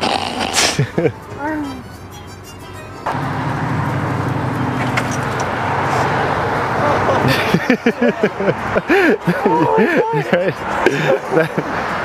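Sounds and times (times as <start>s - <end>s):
tyres hissing on road: 0.0s - 0.9s, 3.1s - 12.0s
car engine running: 1.0s - 9.0s.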